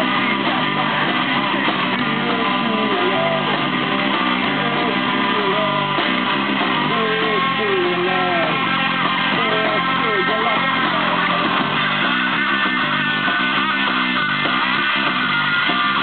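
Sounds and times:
punk rock band playing: 0.0 - 16.0
sliding electric guitar line: 0.0 - 16.0.

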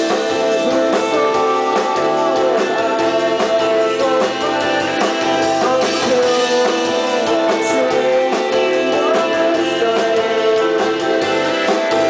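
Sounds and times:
drum kit: 0.0 - 12.0
electric guitars: 0.0 - 12.0.

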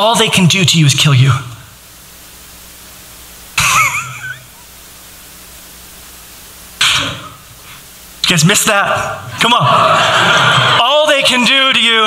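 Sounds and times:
cough-like vocal burst: 6.8 - 7.4.

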